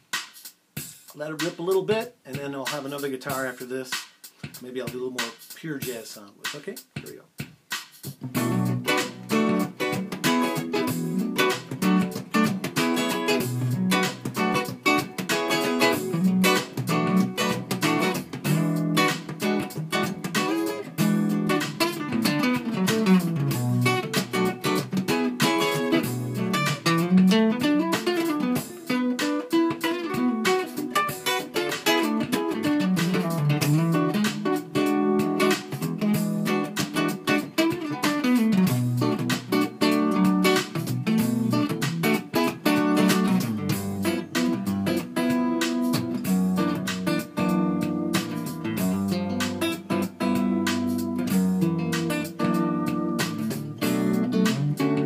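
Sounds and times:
electric guitar jazz groove: 0:00.0 - 0:55.0.

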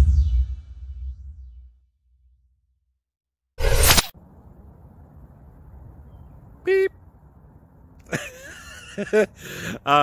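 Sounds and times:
low outdoor background rumble: 0:04.2 - 0:08.2.

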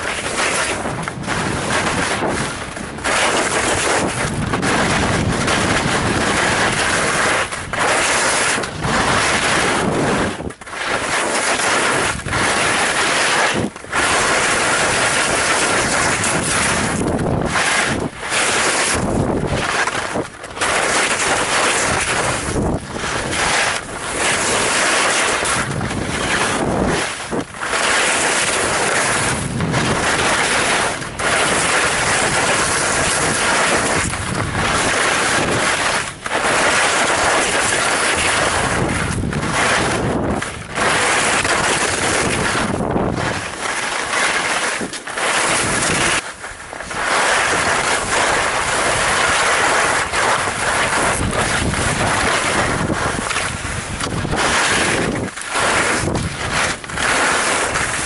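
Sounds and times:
wind rushing on microphone: 0:00.0 - 0:58.0.

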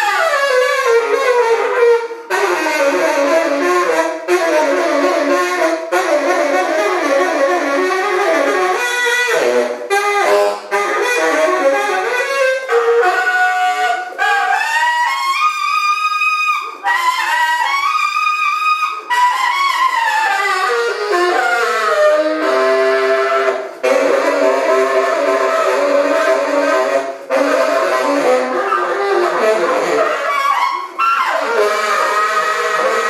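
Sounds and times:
tenor saxophone solo: 0:00.0 - 0:33.0.

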